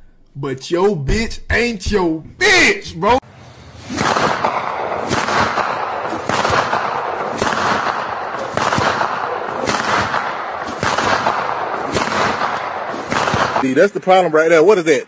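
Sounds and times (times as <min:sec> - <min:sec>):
gunfire-like noisy bursts: 0:03.8 - 0:13.6.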